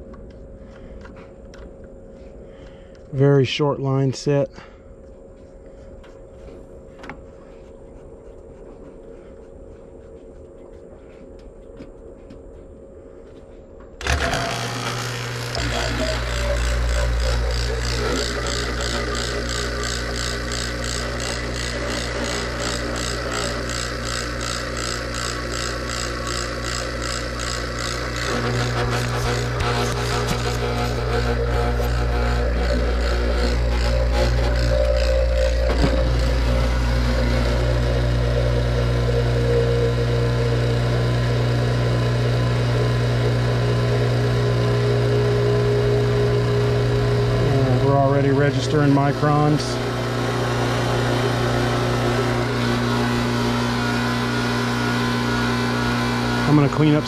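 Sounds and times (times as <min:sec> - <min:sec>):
vacuum pump motor hum: 0:13.7 - 0:57.0.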